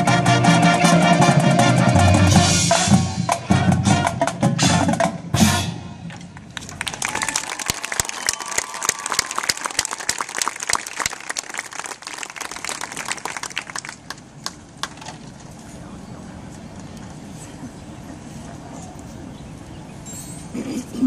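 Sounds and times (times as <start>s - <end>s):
crowd applauding: 6.4s - 15.0s
murmur of talk: 15.6s - 21.0s.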